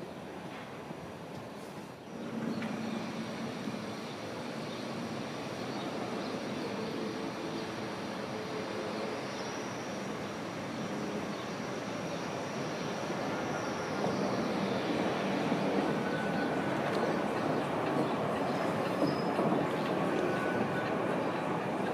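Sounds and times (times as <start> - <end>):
faint steady whine: 0.0 - 21.9
funicular car rolling rumble: 0.0 - 21.9.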